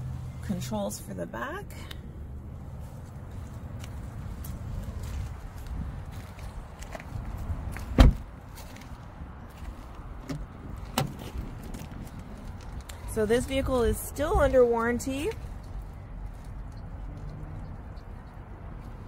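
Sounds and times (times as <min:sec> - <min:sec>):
steady low rumble: 0:00.0 - 0:19.0
footsteps on gravel: 0:02.7 - 0:10.2
car door opening click: 0:08.0 - 0:08.2
car door shutting thump: 0:08.0 - 0:08.3.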